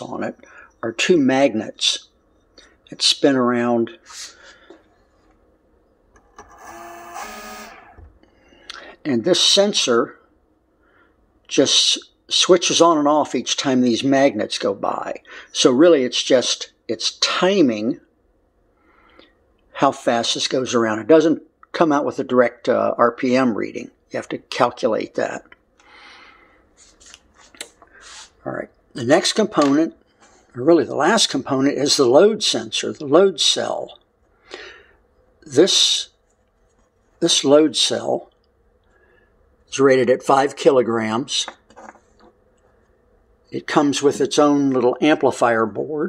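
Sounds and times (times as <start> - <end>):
sewing machine motor whining: 6.2 - 8.1.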